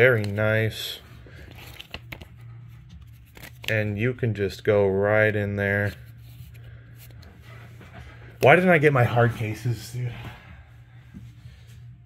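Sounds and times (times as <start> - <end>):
rustling of cards and plastic sleeves: 0.0 - 4.6, 5.6 - 7.4
low steady hum: 0.0 - 12.0.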